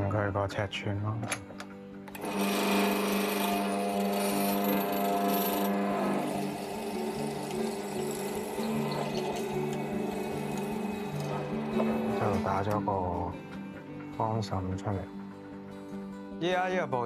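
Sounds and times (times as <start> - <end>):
motor humming: 2.1 - 12.8
chisel cutting into hardwood: 2.2 - 12.7.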